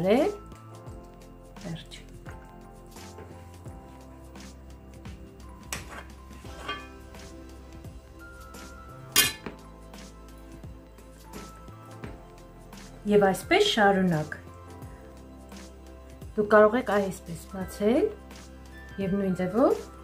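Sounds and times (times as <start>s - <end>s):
background music: 0.0s - 20.0s
metal spoon clinking on pan: 5.7s - 7.1s, 9.2s - 9.6s.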